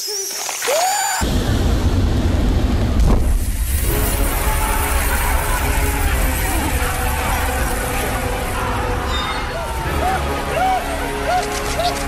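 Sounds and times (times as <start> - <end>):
loud low rumble: 1.2 - 8.8.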